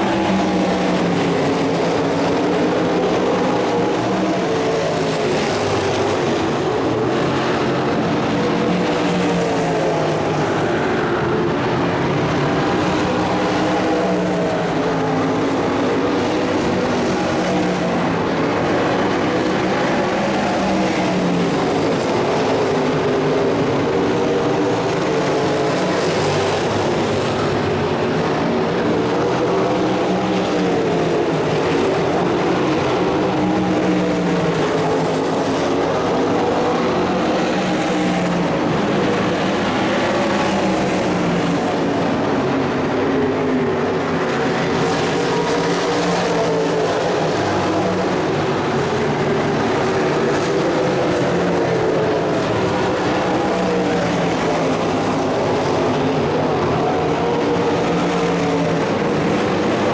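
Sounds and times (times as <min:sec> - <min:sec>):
racing car engines: 0:00.0 - 0:59.9.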